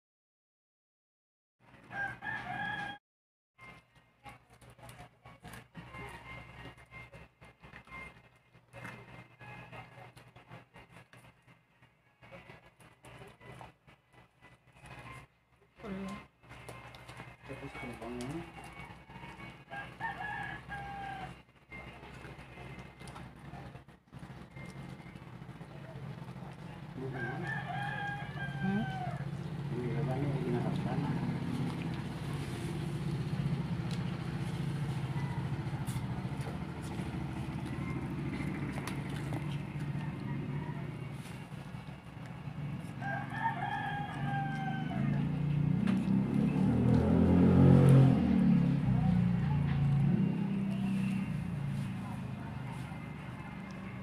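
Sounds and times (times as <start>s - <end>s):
rooster crowing: 1.9s - 3.0s, 19.1s - 21.4s, 27.0s - 31.2s, 34.3s - 36.8s, 39.5s - 41.6s, 42.8s - 45.6s
puppy chewing and licking: 3.6s - 11.5s, 12.4s - 15.2s, 15.8s - 21.2s, 21.8s - 47.2s
long animal call: 28.6s - 29.5s.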